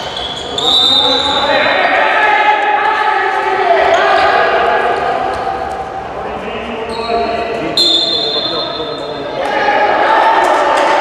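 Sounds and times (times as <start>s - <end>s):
echoing voices: 0.0s - 11.0s.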